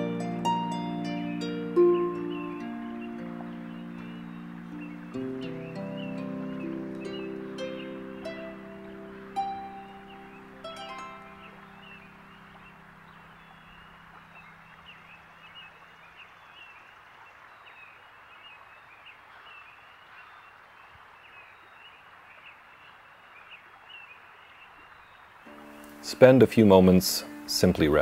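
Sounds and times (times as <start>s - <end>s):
plucked harp notes: 0.0s - 12.7s, 25.5s - 28.0s
birds chirping: 0.0s - 28.0s
soft steady hiss: 0.0s - 28.0s.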